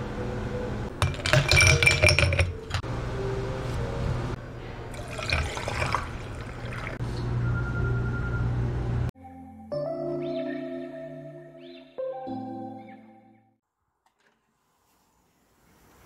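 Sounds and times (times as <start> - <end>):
glassware clinking: 1.0 - 2.8, 4.9 - 6.8
liquid pouring: 4.9 - 7.0.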